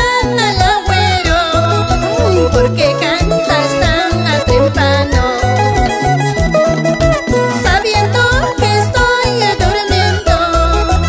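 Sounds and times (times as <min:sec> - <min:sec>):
woman singing: 0:00.0 - 0:06.4, 0:07.5 - 0:11.0
low bass notes: 0:00.0 - 0:11.0
plucked guitar: 0:00.0 - 0:11.0.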